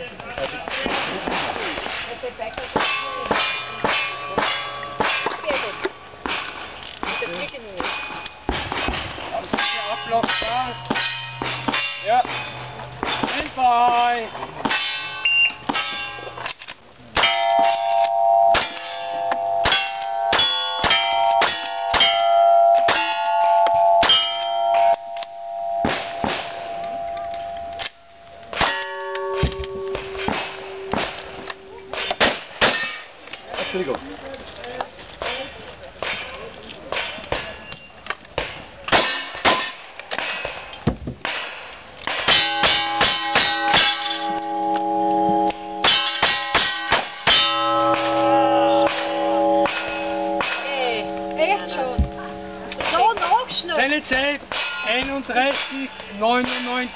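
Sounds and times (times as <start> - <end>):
steel targets ringing: 2.8 - 16.5, 17.2 - 33.9, 42.1 - 53.7, 54.5 - 56.9.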